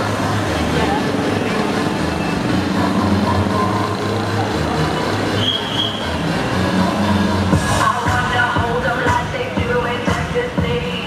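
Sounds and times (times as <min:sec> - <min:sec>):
cars driving past: 0:00.0 - 0:11.0
crowd voices: 0:00.0 - 0:11.0
dance music: 0:00.0 - 0:11.0.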